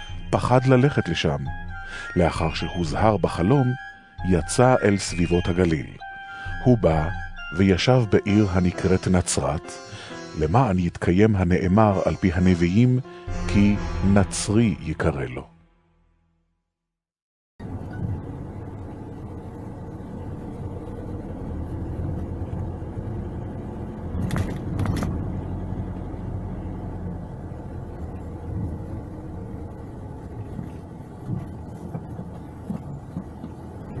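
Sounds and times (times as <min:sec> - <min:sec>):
car engine and road rumble: 0:17.6 - 0:34.0.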